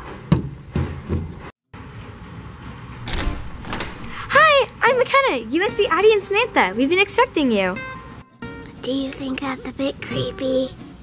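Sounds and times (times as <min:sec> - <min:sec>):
door scraping open: 0:03.0 - 0:04.4.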